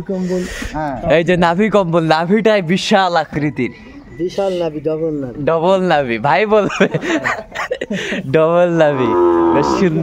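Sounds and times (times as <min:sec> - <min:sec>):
calf mooing: 0:08.8 - 0:10.0.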